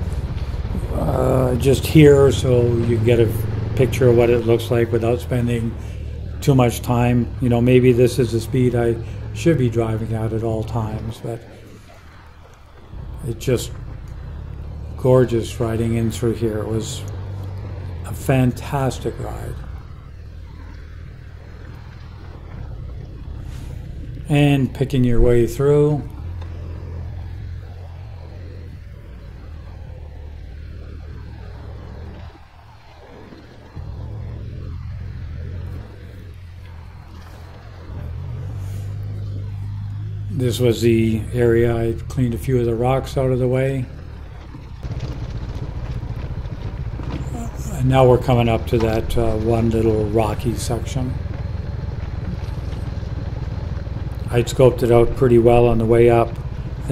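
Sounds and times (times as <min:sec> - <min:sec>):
motorcycle engine rumble: 0:00.0 - 0:56.9
wind noise: 0:00.0 - 0:56.9.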